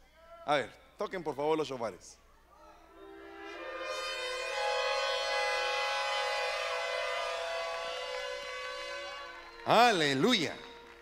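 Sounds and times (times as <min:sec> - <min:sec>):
shofars blowing long blasts: 0:02.9 - 0:11.0.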